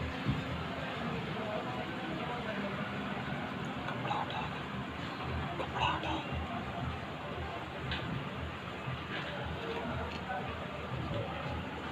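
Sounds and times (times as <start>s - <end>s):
indistinct voices: 0.7s - 11.9s.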